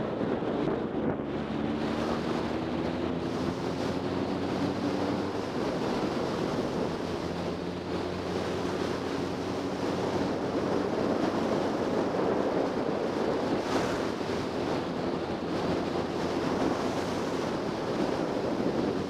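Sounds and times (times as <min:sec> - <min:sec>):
motorcycle engine drone: 0:00.0 - 0:19.0
wind buffeting microphone: 0:00.0 - 0:19.0.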